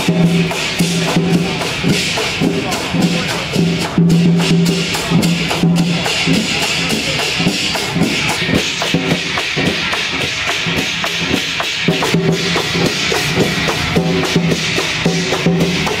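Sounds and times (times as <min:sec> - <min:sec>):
drums and wood-block beats: 0:00.0 - 0:16.0.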